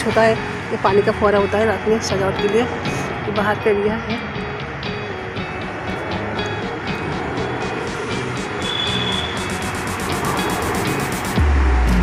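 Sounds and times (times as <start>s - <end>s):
music playing: 0.0s - 12.0s
traffic noise: 0.0s - 12.0s.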